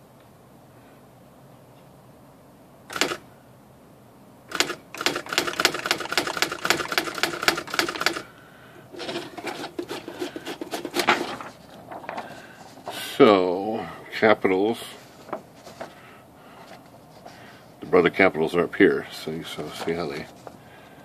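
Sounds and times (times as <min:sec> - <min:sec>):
electronic typewriter printing: 0:02.9 - 0:03.2, 0:04.5 - 0:08.3.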